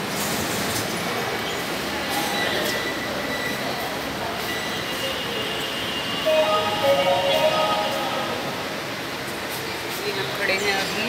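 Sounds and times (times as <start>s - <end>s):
metro train rushing: 6.1s - 9.9s
high pitched train sound: 6.2s - 9.4s.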